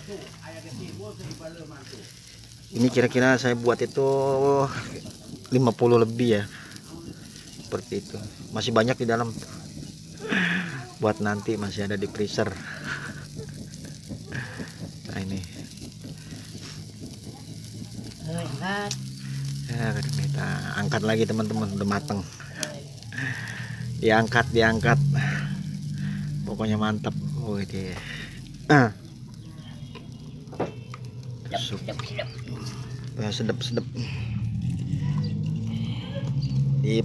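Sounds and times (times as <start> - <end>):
faint voices: 0.0 - 37.0
meat sizzling on a grill: 0.0 - 37.0.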